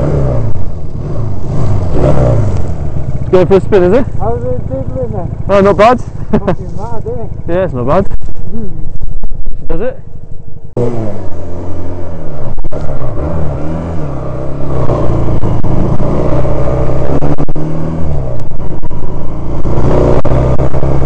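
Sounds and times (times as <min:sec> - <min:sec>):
motorcycle engine pulling away: 0:00.0 - 0:07.6, 0:10.8 - 0:21.0.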